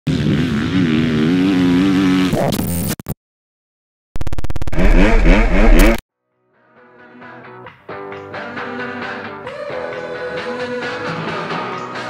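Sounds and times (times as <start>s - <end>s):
motocross bike engine revving high: 0.1s - 2.4s, 4.7s - 6.0s.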